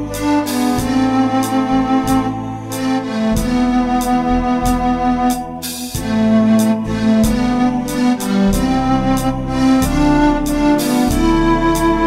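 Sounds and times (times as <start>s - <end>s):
electronic organ easy-listening music: 0.0s - 12.0s.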